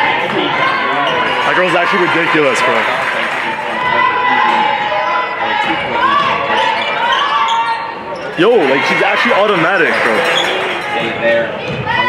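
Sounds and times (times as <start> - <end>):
crowd hum: 0.0 - 12.0
shoes squeaking: 6.7 - 11.2.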